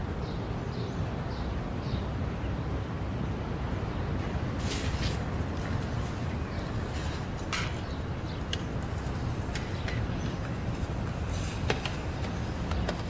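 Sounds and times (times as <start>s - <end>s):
low outdoor rumble: 1.1s - 13.0s.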